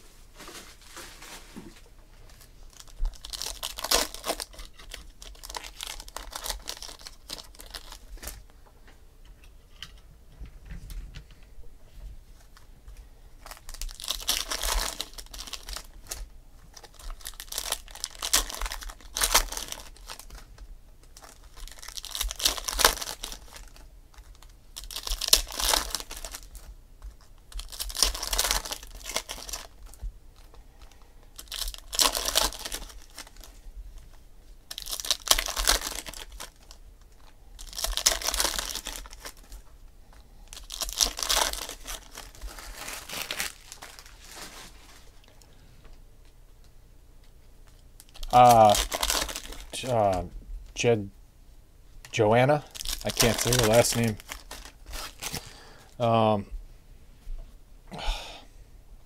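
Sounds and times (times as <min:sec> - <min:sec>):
card pack wrappers crinkling: 0:00.4 - 0:08.5, 0:13.4 - 0:45.5, 0:47.6 - 0:50.9, 0:52.0 - 0:56.1.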